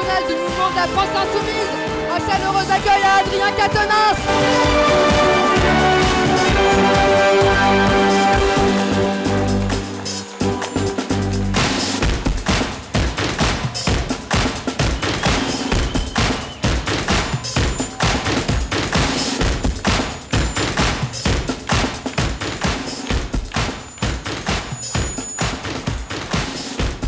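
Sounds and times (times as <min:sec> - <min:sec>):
crowd clapping: 0:00.0 - 0:27.0
loud music with a beat: 0:00.0 - 0:27.0.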